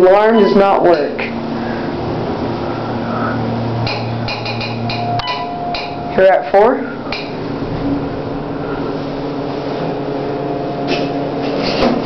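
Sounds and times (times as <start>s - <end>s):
elevator doors opening: 0.0s - 12.0s
elevator pump motor hum: 0.0s - 12.0s.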